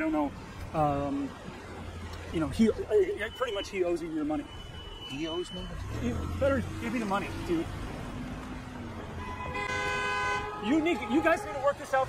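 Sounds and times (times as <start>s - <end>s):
city street traffic rumble: 0.0s - 12.0s
car horn honking: 3.1s - 7.4s, 9.1s - 11.7s.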